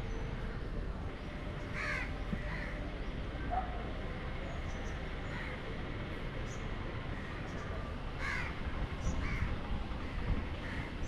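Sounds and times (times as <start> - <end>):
crow cawing: 1.8 - 2.8, 8.2 - 8.5.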